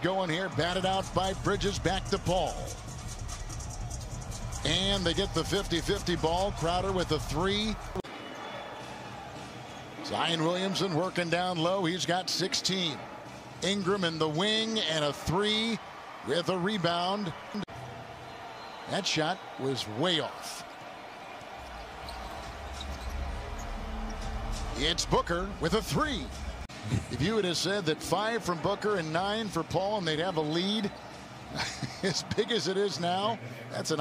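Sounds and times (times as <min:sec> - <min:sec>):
arena noise: 0:00.0 - 0:34.0
sneaker squeaks: 0:21.6 - 0:24.4.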